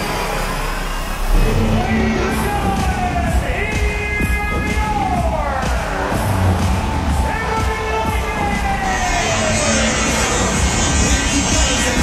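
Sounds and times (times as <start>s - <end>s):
dramatic music: 0.0s - 12.0s.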